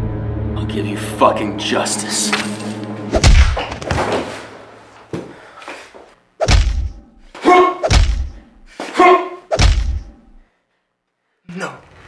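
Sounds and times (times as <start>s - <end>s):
club blows landing with deep thuds: 3.2s - 3.7s, 6.4s - 7.1s, 7.8s - 8.5s, 9.5s - 10.4s.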